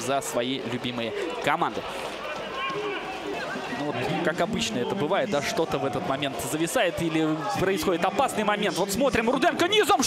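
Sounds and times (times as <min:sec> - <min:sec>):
outdoor crowd murmur: 0:00.0 - 0:10.0.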